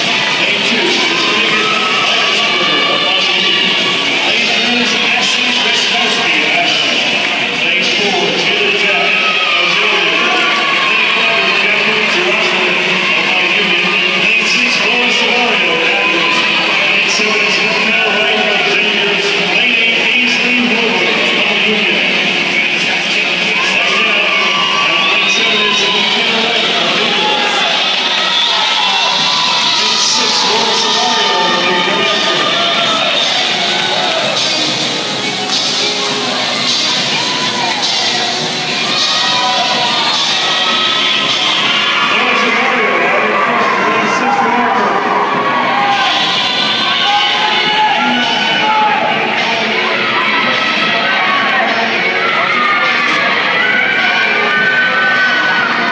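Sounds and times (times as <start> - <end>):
crowd voices and cheering: 0.0 - 55.9.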